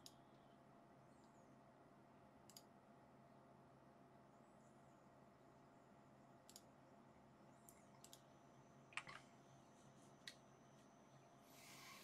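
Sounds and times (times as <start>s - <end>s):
computer mouse clicks: 2.5s - 2.7s, 6.4s - 6.7s, 7.6s - 8.3s.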